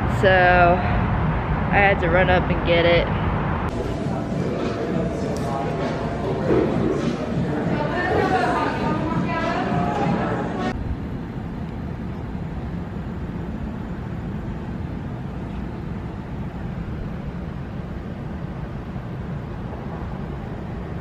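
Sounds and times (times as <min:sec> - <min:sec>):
city background rumble: 0:00.0 - 0:21.0.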